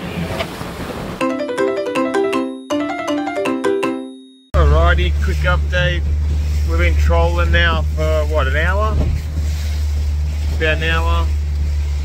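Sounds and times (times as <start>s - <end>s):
music with quick plucked notes: 1.2s - 4.4s
motorboat running: 4.6s - 12.0s.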